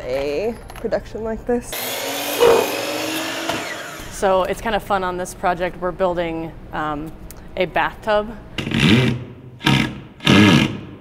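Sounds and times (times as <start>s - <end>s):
cordless drill whirring into wood: 1.8s - 4.1s.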